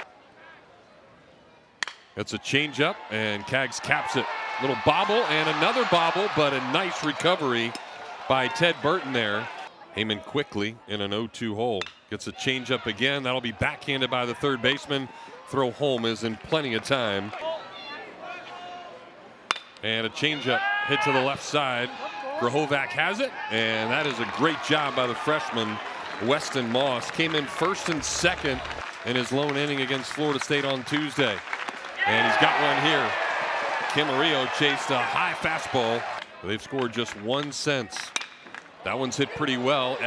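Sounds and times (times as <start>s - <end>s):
bat cracking on ball: 1.8s - 2.1s
metal bat hitting baseball: 1.8s - 2.1s, 19.5s - 19.8s, 38.2s - 38.5s
stadium crowd murmur: 20.0s - 31.4s.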